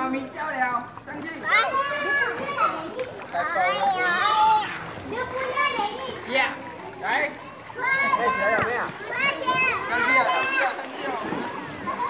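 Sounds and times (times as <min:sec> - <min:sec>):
children calling and chattering: 0:00.2 - 0:12.0
people talking: 0:01.1 - 0:12.0.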